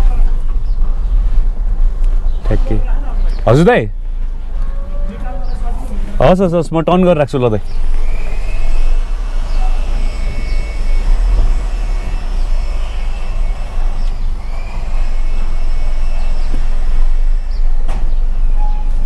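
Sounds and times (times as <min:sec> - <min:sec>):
car engine and road rumble: 0:00.0 - 0:19.0.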